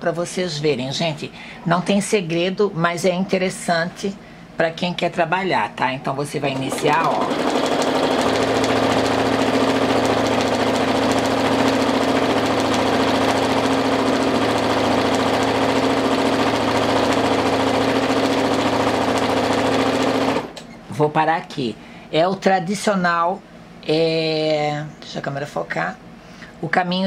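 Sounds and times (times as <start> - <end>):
sewing machine running: 6.5 - 20.6.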